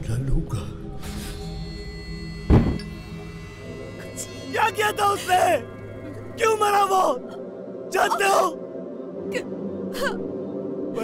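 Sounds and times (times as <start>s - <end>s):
film score drone: 0.0s - 11.0s.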